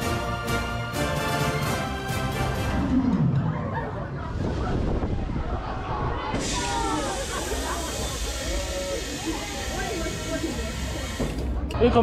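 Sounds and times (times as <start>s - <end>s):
people chattering and calling out: 3.2s - 12.0s
steady hiss: 6.4s - 11.2s.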